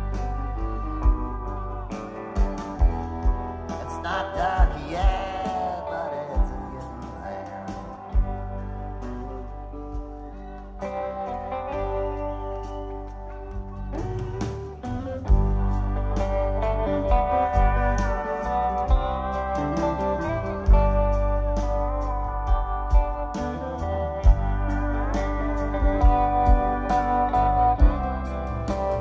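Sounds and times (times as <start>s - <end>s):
bass and drums: 0.0s - 29.0s
lead guitar with gliding notes: 0.0s - 29.0s.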